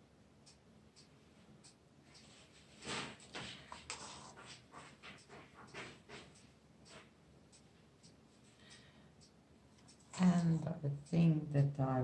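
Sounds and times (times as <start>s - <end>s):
tool scraping paint on canvas: 2.7s - 7.1s.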